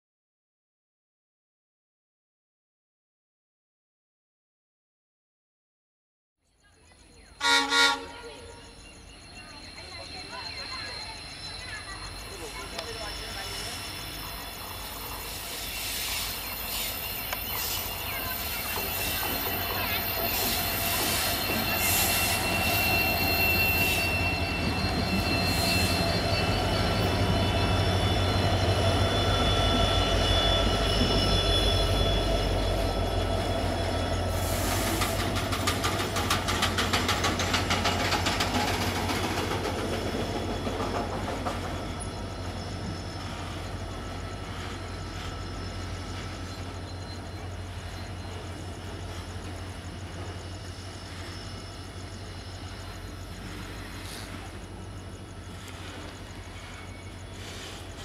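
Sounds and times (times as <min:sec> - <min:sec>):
diesel locomotive engine drone: 0:06.6 - 0:58.0
wheel squeal: 0:08.3 - 0:58.0
wheels clacking over rail joints: 0:34.6 - 0:50.5.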